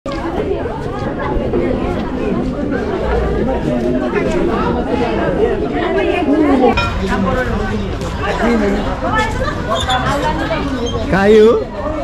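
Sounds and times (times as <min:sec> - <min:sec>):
people talking overlapping chatter: 0:00.1 - 0:12.0.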